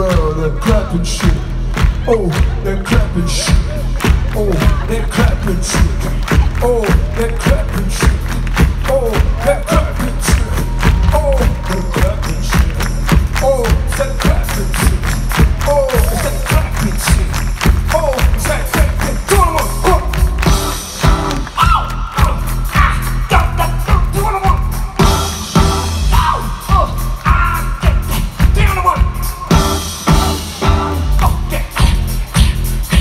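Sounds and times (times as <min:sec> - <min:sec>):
live band playing: 0:00.0 - 0:33.0
steady drum beat: 0:00.0 - 0:33.0.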